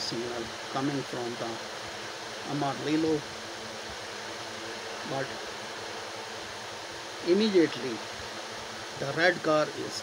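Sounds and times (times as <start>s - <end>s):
faint low hum: 0.0s - 10.0s
steady background hiss: 0.0s - 10.0s.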